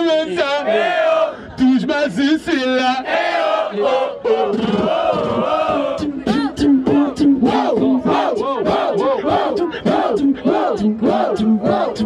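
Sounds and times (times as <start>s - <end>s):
beatboxing into microphone: 4.4s - 12.0s.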